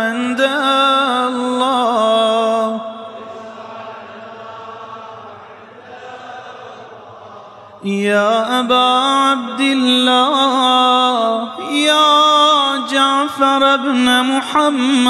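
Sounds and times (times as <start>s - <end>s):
man chanting melodically: 7.8s - 15.0s.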